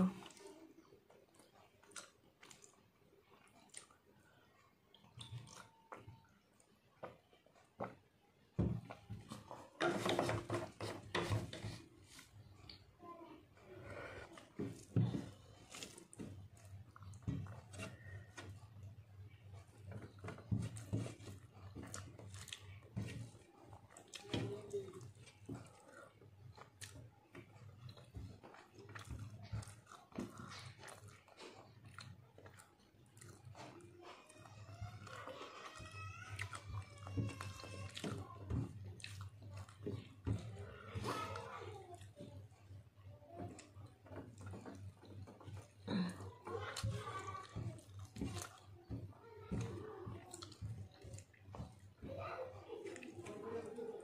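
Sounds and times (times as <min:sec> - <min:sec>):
chewing and mouth smacks: 0:00.2 - 0:07.8, 0:20.8 - 0:34.2, 0:35.0 - 0:36.6, 0:37.8 - 0:40.4, 0:43.5 - 0:48.7, 0:50.2 - 0:51.9.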